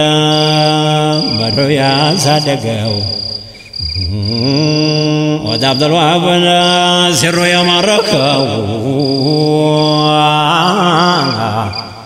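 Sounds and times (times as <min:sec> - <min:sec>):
man chanting devotional song: 0:00.0 - 0:12.0.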